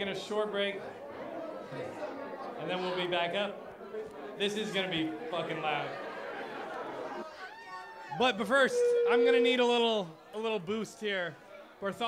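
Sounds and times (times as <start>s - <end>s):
bar crowd chatter: 0.0s - 12.0s.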